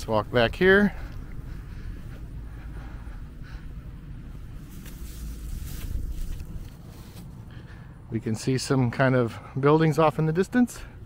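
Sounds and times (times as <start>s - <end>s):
wind buffeting microphone: 0.0s - 8.1s.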